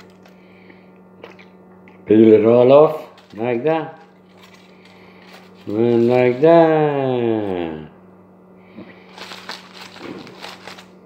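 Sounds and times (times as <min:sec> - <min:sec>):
aluminium foil crinkling: 0:00.0 - 0:00.4, 0:02.9 - 0:06.8, 0:09.1 - 0:11.0.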